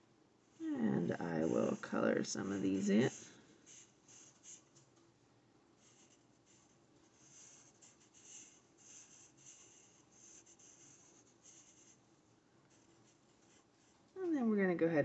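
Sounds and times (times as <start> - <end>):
marker scratching on paper: 0.6 - 4.8, 5.8 - 12.0, 12.7 - 14.0.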